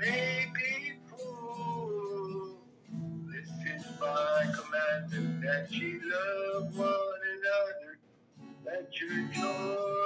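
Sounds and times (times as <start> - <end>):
person singing long notes: 0.0 - 2.6, 8.7 - 10.0
strummed acoustic guitar: 0.0 - 10.0.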